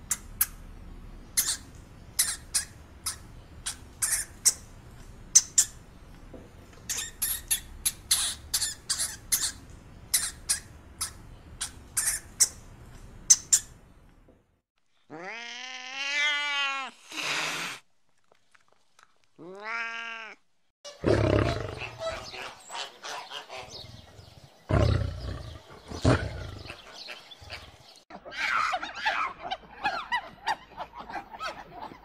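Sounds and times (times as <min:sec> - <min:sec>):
cat meowing: 0:15.1 - 0:16.9, 0:19.4 - 0:20.4.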